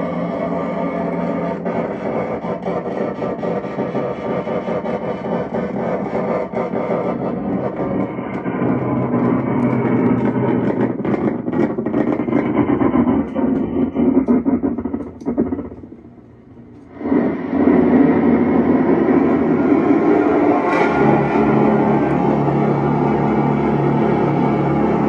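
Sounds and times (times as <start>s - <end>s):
distorted electronic drone: 0.0s - 25.0s.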